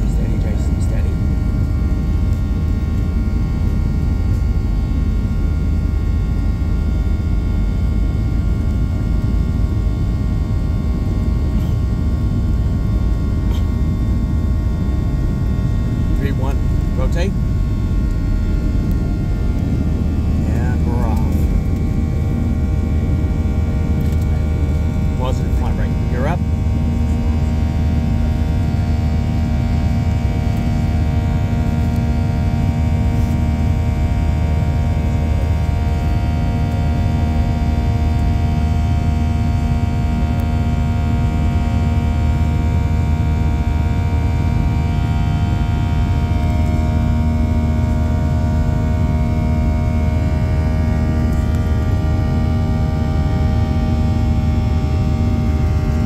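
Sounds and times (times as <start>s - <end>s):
jet engine rumble in cabin: 0.0s - 56.0s
jet engine whining tones: 0.0s - 56.0s.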